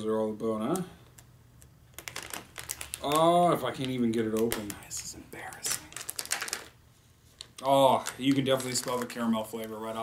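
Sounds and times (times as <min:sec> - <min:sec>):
plastic pouch crinkling: 0:01.9 - 0:10.0.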